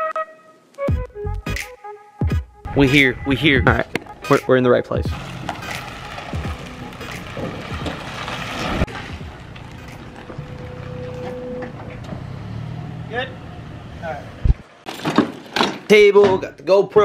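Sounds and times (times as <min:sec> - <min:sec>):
truck engine humming: 0:02.7 - 0:14.9.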